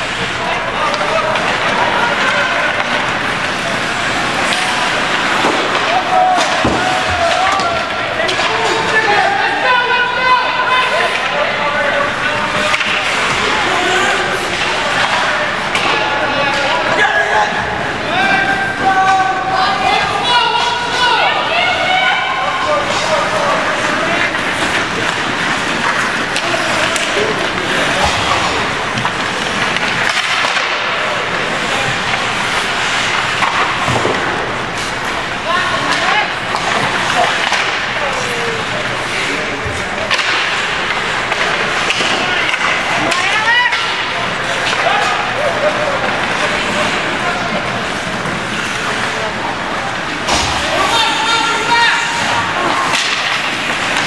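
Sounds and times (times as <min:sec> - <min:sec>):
hockey sticks and puck clacking: 0:00.0 - 0:54.0
skates scraping ice: 0:00.0 - 0:54.0
spectator voices and shouts: 0:03.7 - 0:25.0, 0:50.4 - 0:53.2.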